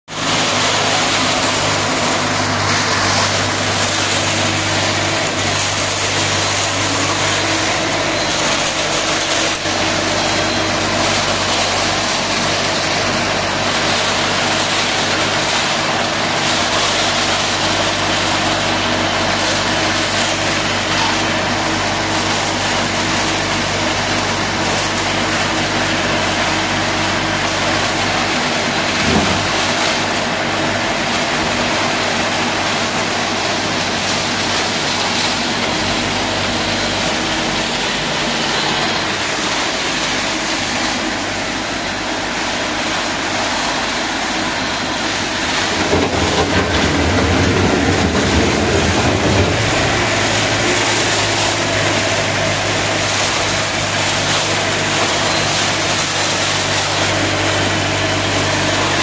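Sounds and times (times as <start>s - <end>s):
concrete mixer diesel engine running: 0.0s - 59.0s.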